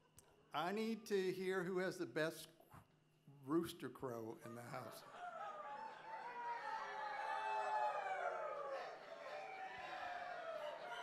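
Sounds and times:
people imitating rooster crows: 5.0s - 11.0s.

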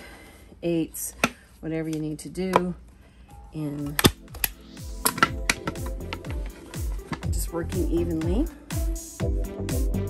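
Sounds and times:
background music with a beat: 4.0s - 10.0s.

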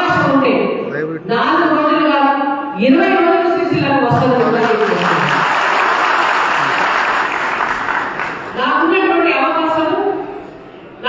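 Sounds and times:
woman speaking over microphone: 0.0s - 5.4s, 8.6s - 10.2s
audience applauding: 4.2s - 8.6s.

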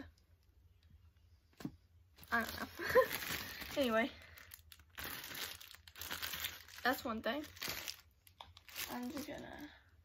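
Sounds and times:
plastic bag of candies crinkling: 2.1s - 10.0s.

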